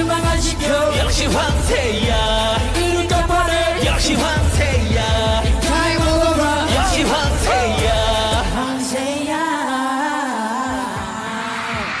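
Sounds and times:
backing music: 0.0 - 12.0
man singing into microphone: 0.0 - 12.0.

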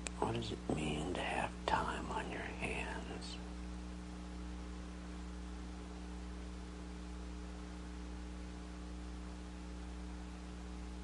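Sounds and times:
electrical hum and hiss: 0.0 - 11.0
person whispering: 0.2 - 3.5.

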